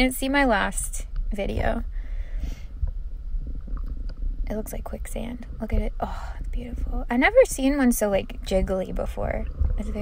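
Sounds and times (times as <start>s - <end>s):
muffled underwater rumble: 0.0s - 10.0s.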